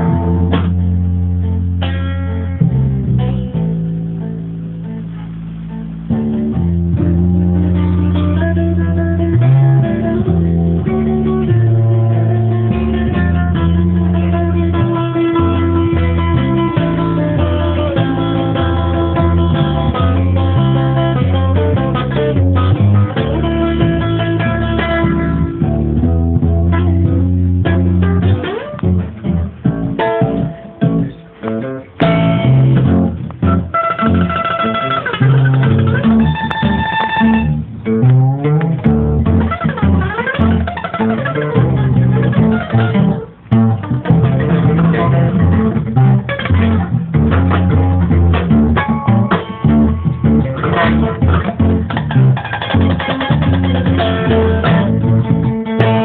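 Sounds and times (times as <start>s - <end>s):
acoustic guitar: 0.0s - 56.0s
plucked double bass: 0.0s - 56.0s.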